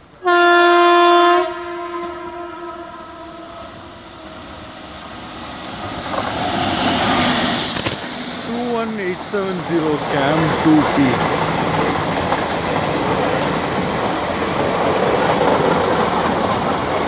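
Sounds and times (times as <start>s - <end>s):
train rumbling on rails: 0.0s - 17.0s
locomotive horn blast: 0.2s - 4.9s.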